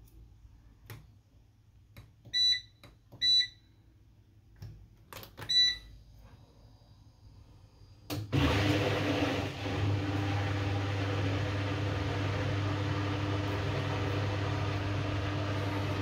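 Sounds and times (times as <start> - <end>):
washing machine humming: 8.1 - 16.0.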